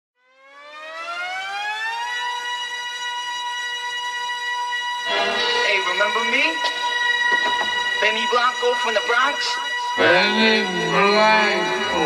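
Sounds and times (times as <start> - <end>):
air-raid siren sound: 0.2 - 12.0.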